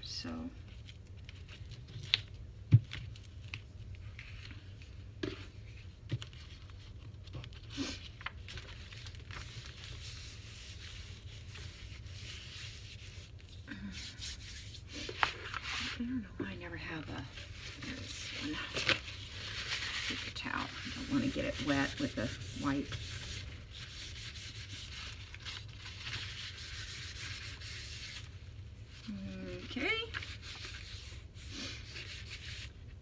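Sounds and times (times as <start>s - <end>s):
tissue rubbing on paper: 3.2s - 33.0s.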